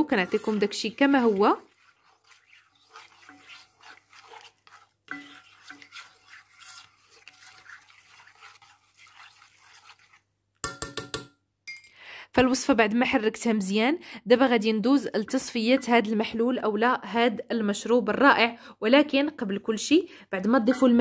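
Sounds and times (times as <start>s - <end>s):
spoon scraping metal pot: 0.0s - 11.3s.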